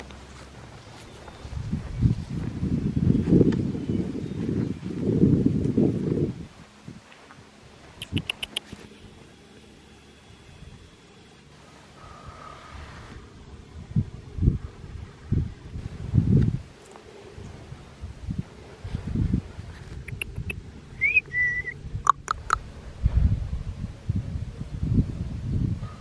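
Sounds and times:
wind and microphone handling bumps: 0.0s - 8.9s, 12.7s - 26.0s
sharp clicks or chirps: 8.0s - 8.8s, 20.0s - 20.6s, 22.1s - 22.6s
high whistle-like call: 21.0s - 22.5s.

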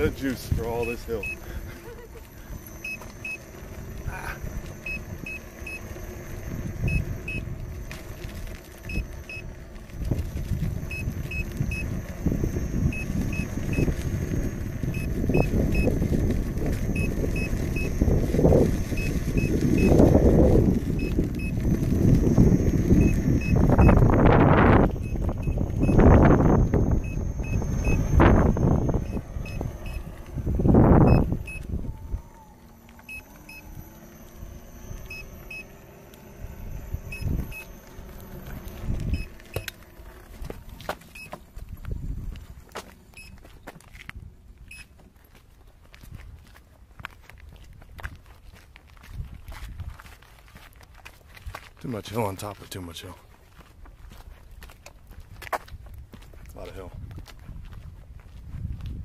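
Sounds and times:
wind buffeting microphone: 8.9s - 42.8s, 47.4s - 50.1s, 53.8s - 59.0s.

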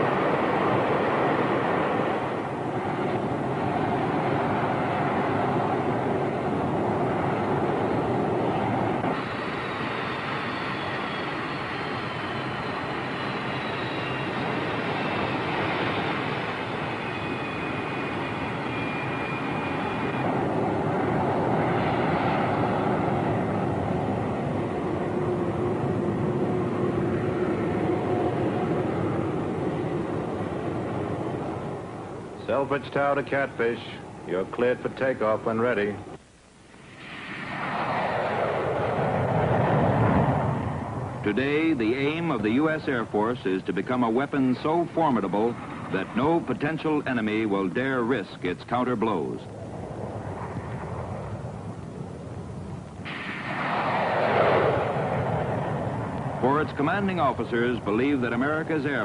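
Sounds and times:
high jet whine falling in pitch: 0.0s - 59.0s
jet engines roaring: 0.0s - 59.0s.

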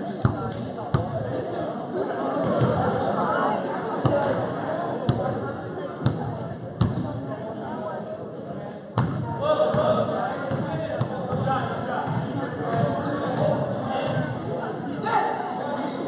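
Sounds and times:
spectators talking: 0.0s - 16.0s
basketball bouncing on gym floor: 9.0s - 14.3s.

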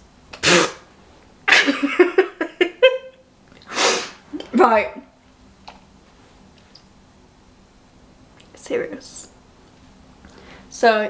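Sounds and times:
woman stifling laughter: 1.5s - 3.2s.

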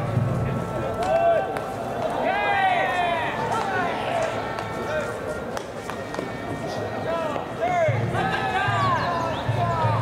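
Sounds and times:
players shouting and calling: 0.0s - 10.0s.

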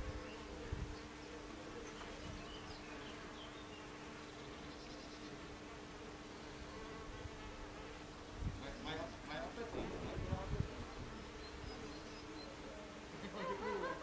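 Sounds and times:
bees buzzing: 0.0s - 14.0s.

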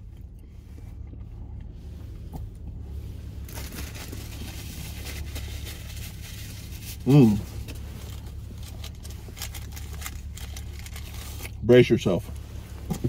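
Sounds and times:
low rumble in vehicle cab: 0.0s - 13.0s
paper napkin rustling: 3.3s - 11.6s.

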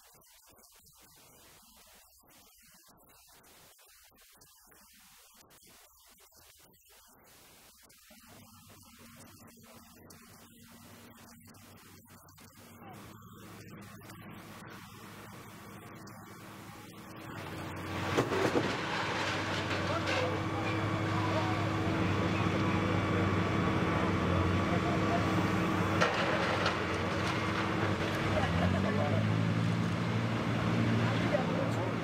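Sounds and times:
background noise haze: 0.0s - 32.0s
engine running: 12.8s - 32.0s.

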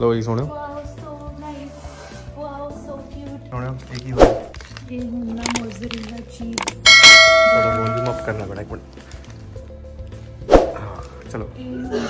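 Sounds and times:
quick clicks: 5.4s - 6.9s
bright bell ding: 6.6s - 8.5s.

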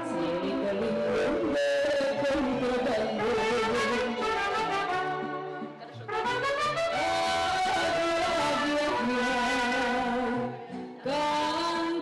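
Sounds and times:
mariachi band with trumpets and guitars: 0.0s - 12.0s.

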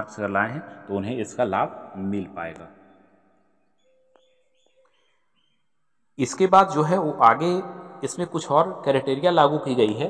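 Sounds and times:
faint bird chirps: 2.6s - 6.2s.

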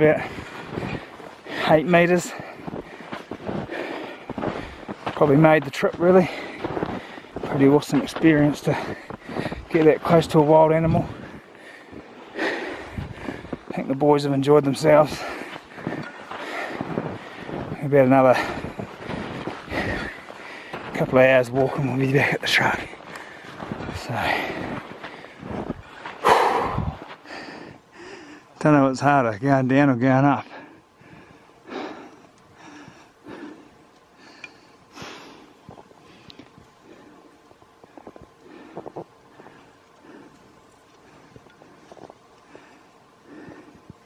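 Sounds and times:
footsteps in snow: 0.0s - 27.8s
person breathing: 0.2s - 5.2s, 6.2s - 7.5s, 8.8s - 9.7s, 11.0s - 13.7s, 15.1s - 20.9s, 23.0s - 28.6s, 30.5s - 44.0s.

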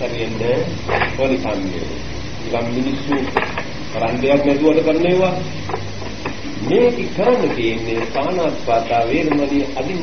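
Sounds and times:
man preaching: 0.0s - 5.5s, 6.6s - 10.0s
recording hiss: 0.0s - 10.0s.

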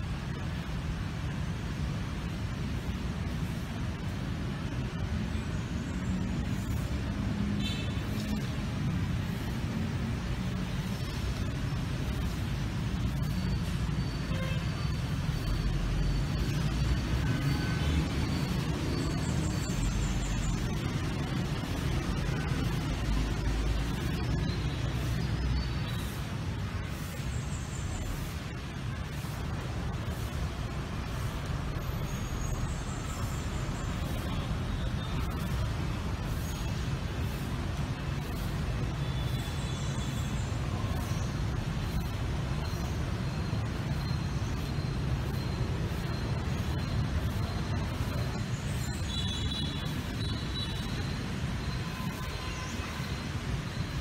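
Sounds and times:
city road traffic rumble: 0.0s - 54.0s.

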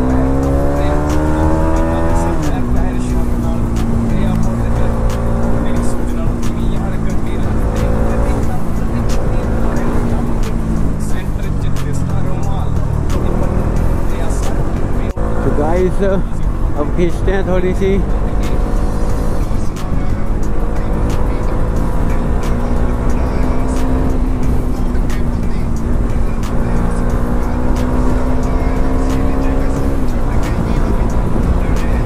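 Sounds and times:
motorcycle engine revving: 0.0s - 32.0s.

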